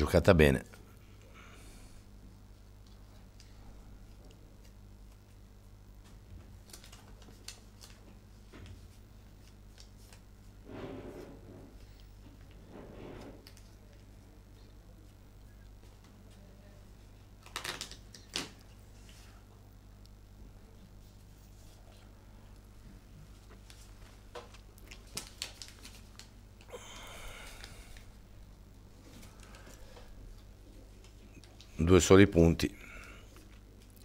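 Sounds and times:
faint steady hum: 0:00.0 - 0:34.0.

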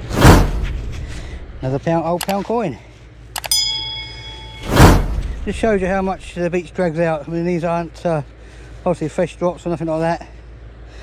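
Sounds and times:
bell ding: 0:03.4 - 0:05.2.

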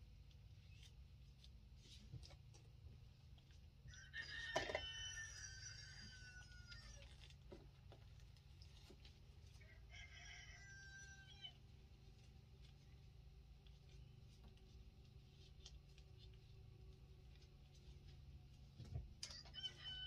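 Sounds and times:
low steady hum: 0:00.0 - 0:20.0
rooster crowing: 0:03.9 - 0:07.1, 0:09.6 - 0:11.6, 0:19.2 - 0:20.0.

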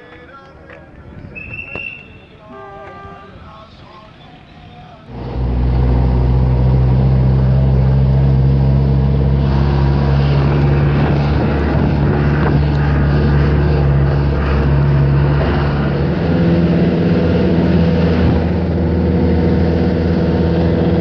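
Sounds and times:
road and wind noise: 0:00.0 - 0:21.0
vehicle engine droning: 0:01.0 - 0:21.0.

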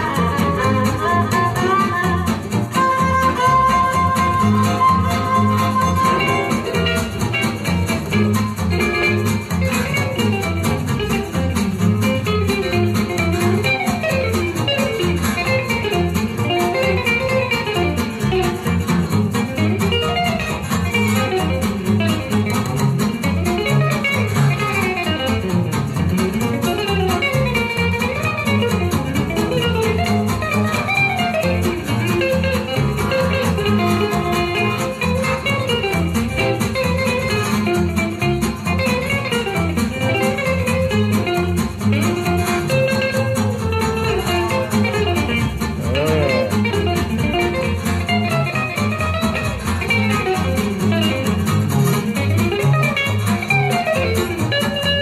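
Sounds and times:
lead acoustic guitar: 0:00.0 - 0:55.0
strummed rhythm guitar: 0:00.0 - 0:55.0
violin: 0:00.0 - 0:55.0.

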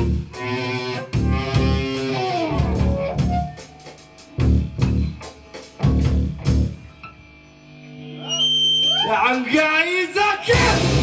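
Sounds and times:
electric guitar chord ringing: 0:00.0 - 0:03.6.

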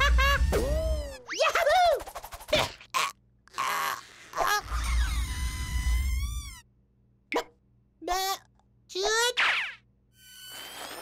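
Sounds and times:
cartoon chick squeaky cries: 0:03.7 - 0:06.6.

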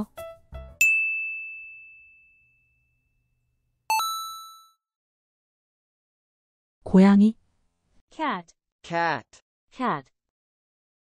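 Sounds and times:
single high ding: 0:00.8 - 0:03.0
fuller multi-tone chime: 0:03.9 - 0:04.8.

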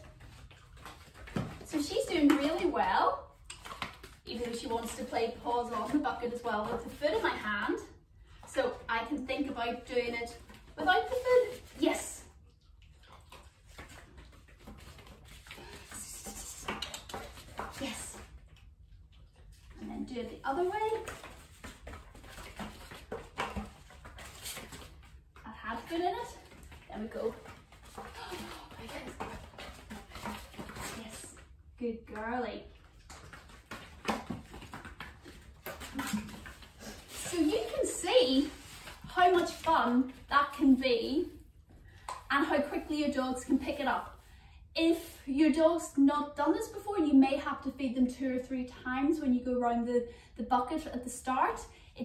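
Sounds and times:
dog paws pattering on mat: 0:00.0 - 0:44.3
woman's voice: 0:01.6 - 0:03.3, 0:04.3 - 0:12.3, 0:17.6 - 0:18.3, 0:19.8 - 0:21.2, 0:25.4 - 0:27.5, 0:28.2 - 0:29.4, 0:30.8 - 0:32.7, 0:37.2 - 0:41.4, 0:42.3 - 0:44.2, 0:44.8 - 0:52.0
small dog tapping and shuffling: 0:32.1 - 0:40.3.

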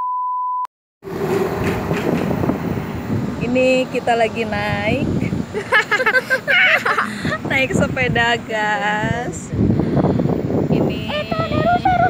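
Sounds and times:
vehicle running: 0:01.0 - 0:08.5
street noise: 0:01.0 - 0:12.0
wind rumbling on microphone: 0:01.0 - 0:12.0.

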